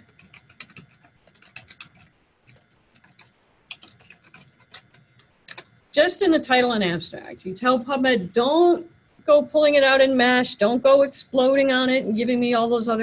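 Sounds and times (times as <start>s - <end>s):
typing on computer keyboard: 0.0s - 5.7s.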